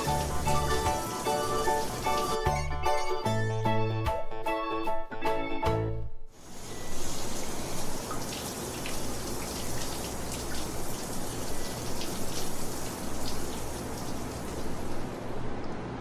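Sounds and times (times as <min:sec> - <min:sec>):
background hiss: 0:06.4 - 0:15.2.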